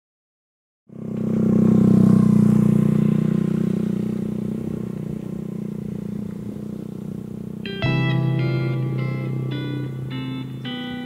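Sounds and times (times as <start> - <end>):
motorcycle engine running: 0.9 - 11.0.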